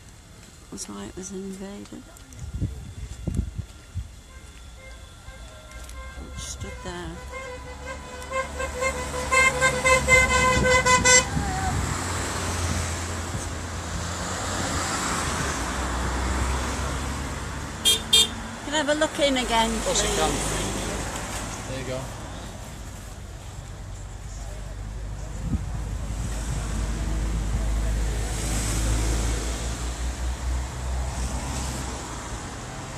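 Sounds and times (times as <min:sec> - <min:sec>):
vehicle horn short beeps: 0:04.2 - 0:11.4, 0:17.8 - 0:18.4
vehicle passing by: 0:06.6 - 0:22.6, 0:25.9 - 0:32.9.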